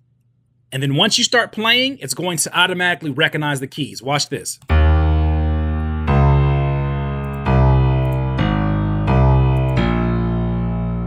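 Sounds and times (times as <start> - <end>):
piano low held notes: 4.7 - 11.0.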